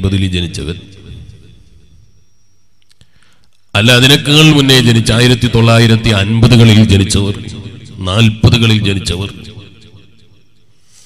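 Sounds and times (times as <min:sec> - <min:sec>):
faint clicks: 0:02.8 - 0:03.7
man speaking loudly: 0:03.8 - 0:09.5.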